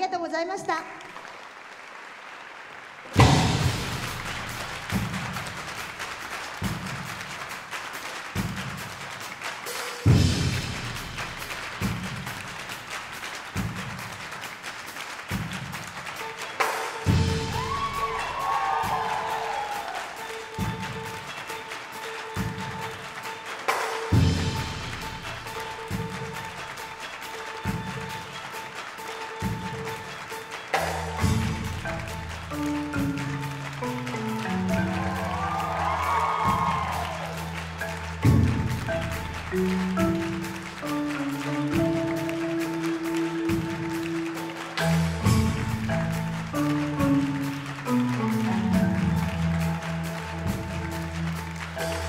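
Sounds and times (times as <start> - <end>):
low marimba notes: 30.8 - 52.0.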